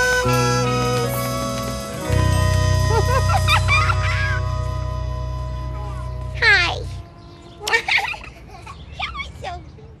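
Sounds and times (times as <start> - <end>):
children laughing and chattering: 0.0 - 10.0.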